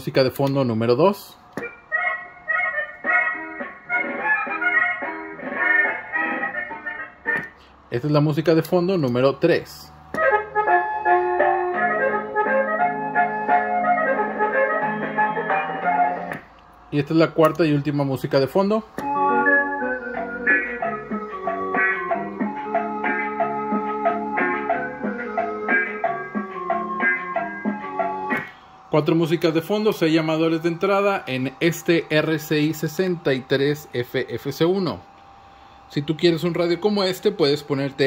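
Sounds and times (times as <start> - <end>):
simple electronic melody: 1.6 - 7.6, 10.2 - 17.9, 18.6 - 35.0.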